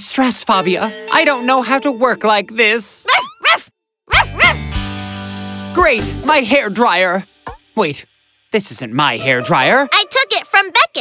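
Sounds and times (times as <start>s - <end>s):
cartoon dog yipping: 3.0s - 4.6s.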